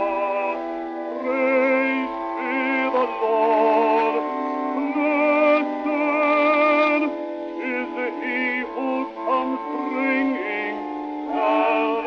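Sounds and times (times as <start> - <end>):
male quartet singing a hymn: 0.0 - 12.0.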